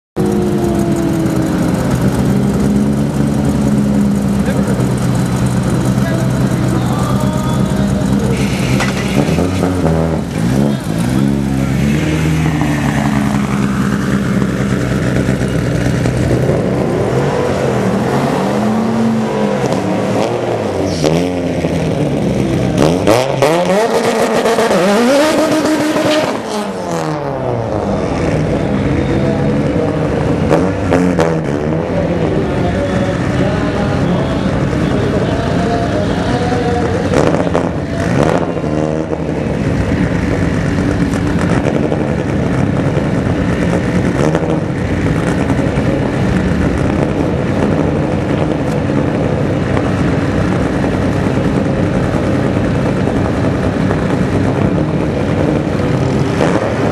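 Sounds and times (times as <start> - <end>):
car engine idling loudly: 0.2 - 56.9
car engine revving: 0.2 - 56.9.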